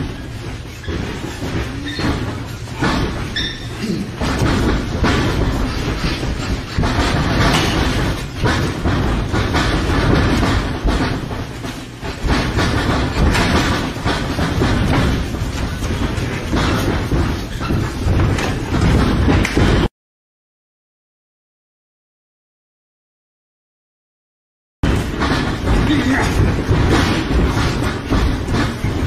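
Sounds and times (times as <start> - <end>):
thuds of boxing blows and footwork: 0.0 - 19.9, 24.8 - 29.0.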